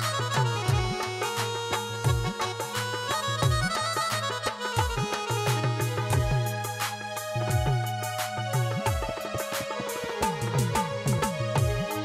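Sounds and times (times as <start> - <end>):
reed-like melody: 0.0 - 12.0
deep drum beat: 0.4 - 1.2, 2.0 - 2.7, 3.4 - 3.8, 4.8 - 12.0.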